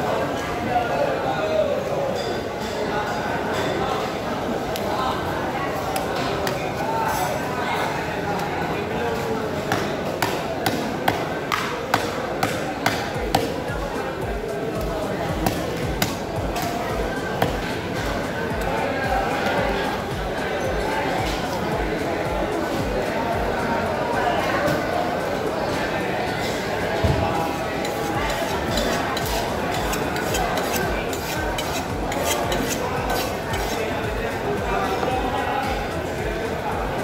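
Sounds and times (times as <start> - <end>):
market chatter: 0.0 - 37.0.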